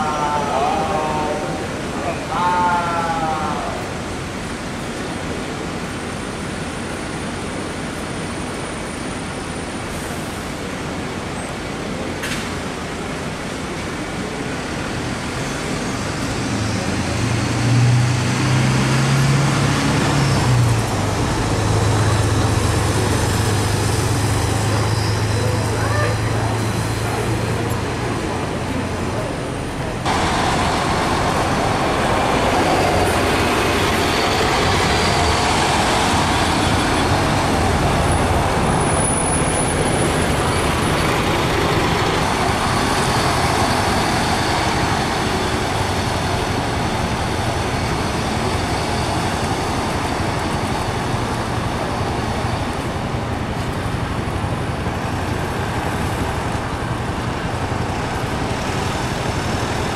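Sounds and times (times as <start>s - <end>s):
road traffic noise: 0.0s - 59.9s
diesel bus pulling away: 4.1s - 59.9s.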